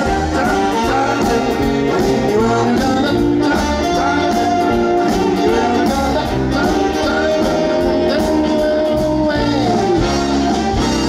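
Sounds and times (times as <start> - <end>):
big band jazz: 0.0 - 11.0
drum kit with cymbals: 0.0 - 11.0
saxophones and brass: 0.0 - 11.0.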